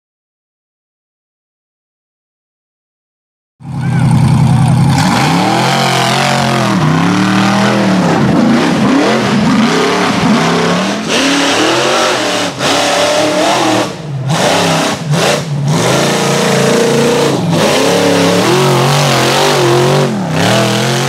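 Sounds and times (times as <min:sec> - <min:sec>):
buggy engines revving hard: 0:03.7 - 0:21.0.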